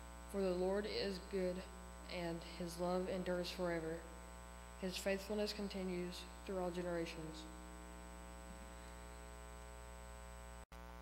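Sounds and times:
electrical mains hum: 0.0s - 11.0s
boy reading aloud: 0.4s - 4.1s, 4.8s - 7.6s.

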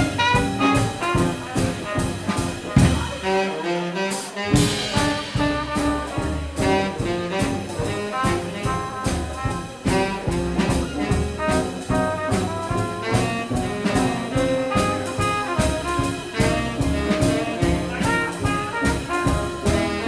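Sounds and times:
jazz band playing: 0.0s - 20.0s
trumpet melody: 0.0s - 20.0s.

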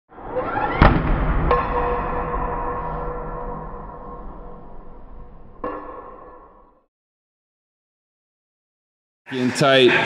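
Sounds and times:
sharp hit: 0.7s - 6.7s.

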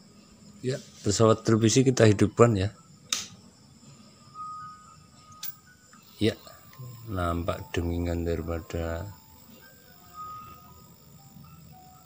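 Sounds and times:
faint music from television speaker: 0.0s - 12.0s
television switch click: 3.1s - 3.4s.

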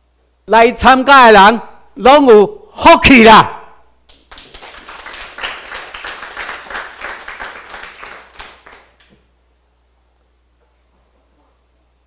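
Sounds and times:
audience applauding: 4.1s - 9.1s.

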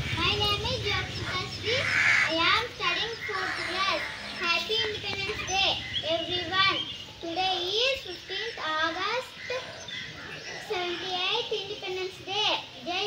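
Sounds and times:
girl reciting: 0.0s - 13.0s.

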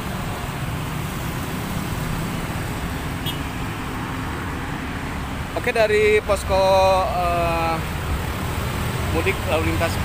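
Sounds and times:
traffic passing: 0.0s - 10.0s.

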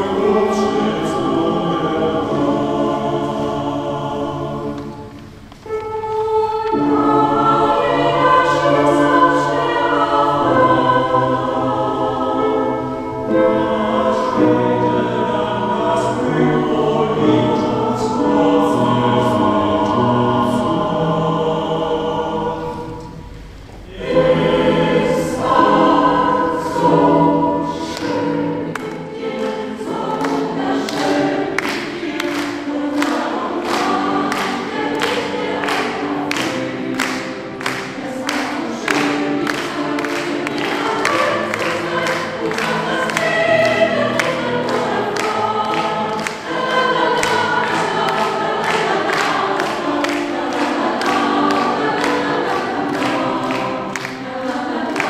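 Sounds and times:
mixed choir singing in harmony: 0.0s - 55.0s.

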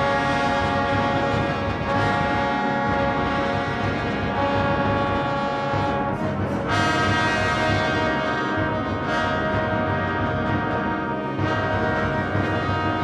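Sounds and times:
orchestra playing brass chords: 0.0s - 13.0s.

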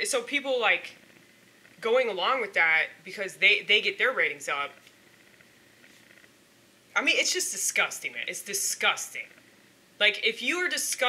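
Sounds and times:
person speaking: 0.0s - 1.1s, 1.8s - 5.0s, 6.9s - 9.4s, 10.0s - 11.0s.

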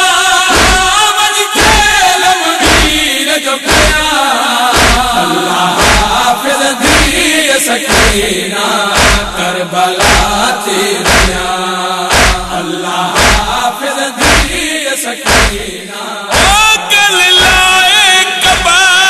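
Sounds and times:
voices chanting a lament: 0.0s - 19.0s
steady percussive beat: 0.5s - 1.0s, 1.6s - 2.0s, 2.6s - 3.1s, 3.7s - 4.1s, 4.8s - 7.3s, 7.9s - 8.4s, 9.0s - 9.4s, 10.0s - 11.5s, 12.1s - 12.6s, 13.2s - 15.7s, 16.3s - 16.8s, 17.4s - 17.7s.

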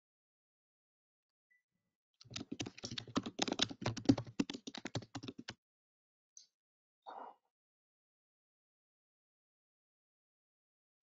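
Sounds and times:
computer keyboard typing: 2.2s - 5.6s.

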